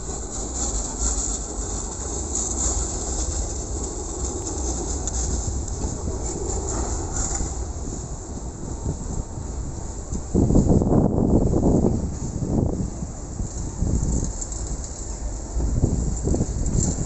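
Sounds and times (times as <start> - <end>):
tram rumbling on rails: 0.0 - 17.0.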